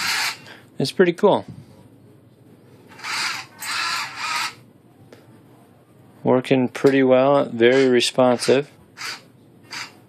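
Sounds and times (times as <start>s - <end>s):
electric gear motors whirring: 7.7s - 10.0s.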